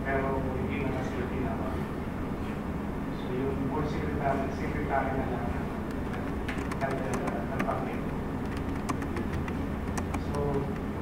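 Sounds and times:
low room hum: 0.0s - 11.0s
keyboard key clicks: 5.9s - 10.9s.

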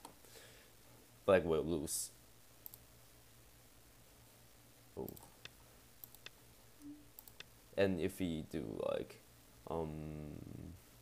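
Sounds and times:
faint computer mouse clicks: 2.6s - 2.8s, 5.0s - 6.4s, 7.2s - 7.5s.

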